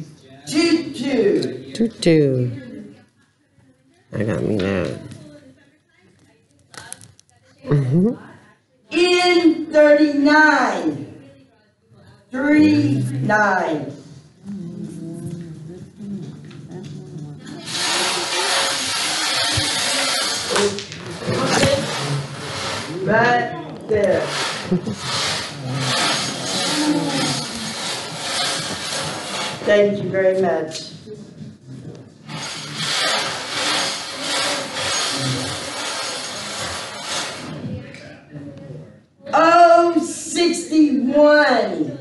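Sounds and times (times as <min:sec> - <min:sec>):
murmur of voices: 0:00.0 - 0:42.0
fabric rubbing on microphone: 0:17.0 - 0:37.9
ball blower running: 0:17.5 - 0:30.0, 0:32.3 - 0:37.7
plastic balls rattling in blower: 0:17.6 - 0:23.0, 0:23.9 - 0:29.7, 0:32.3 - 0:37.6.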